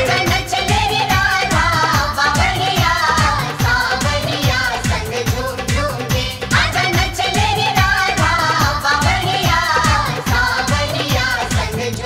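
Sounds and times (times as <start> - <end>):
devotional singing: 0.0 - 12.0
rhythmic drum beat: 0.0 - 12.0.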